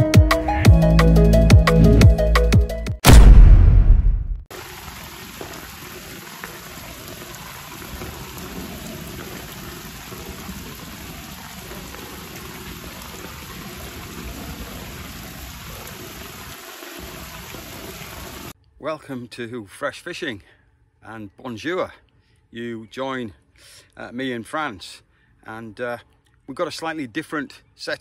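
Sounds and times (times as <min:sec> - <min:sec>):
music: 0:00.0 - 0:03.0
heavy rain on a lake: 0:04.5 - 0:18.6.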